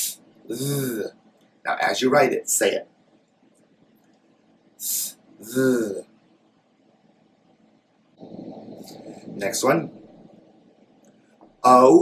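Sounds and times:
man hissing through mouth: 0:04.8 - 0:06.0.

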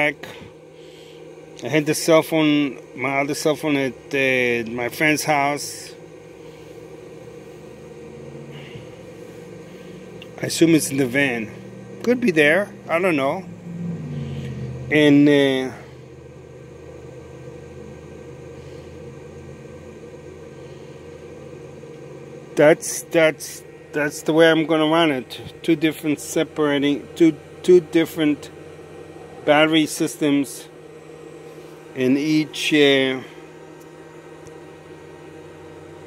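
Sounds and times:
low mechanical hum: 0:00.0 - 0:36.0.

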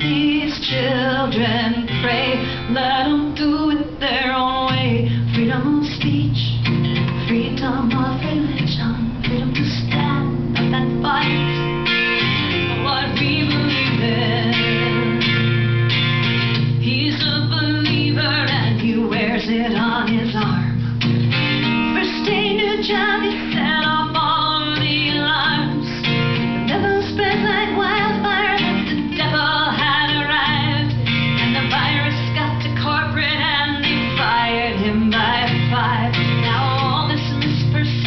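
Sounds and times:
strummed acoustic guitar: 0:00.0 - 0:38.0
woman singing folk song: 0:00.0 - 0:38.0.

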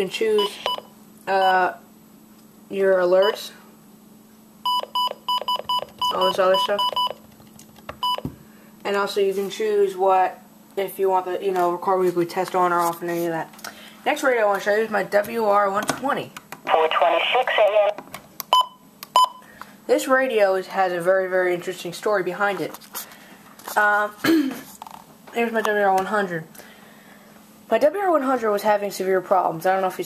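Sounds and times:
electronic key-press beeps: 0:00.4 - 0:00.9, 0:04.7 - 0:07.2, 0:08.0 - 0:08.3, 0:18.5 - 0:19.4.

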